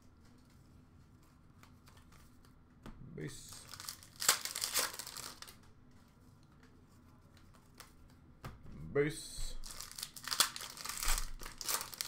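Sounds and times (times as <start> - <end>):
cards rustling: 0.1 - 8.3, 9.6 - 12.0.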